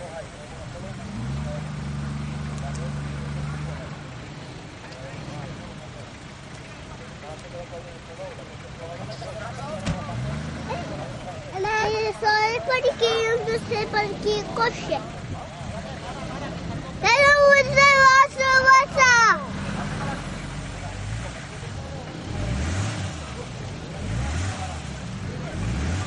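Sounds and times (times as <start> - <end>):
suv engine revving: 0.0 - 26.0.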